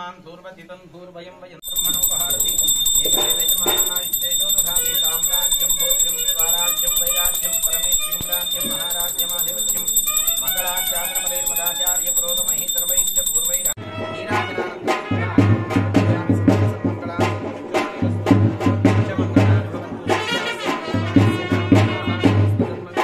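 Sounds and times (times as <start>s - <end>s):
bell ringing rapidly: 1.6s - 13.8s
voices: 1.6s - 13.8s.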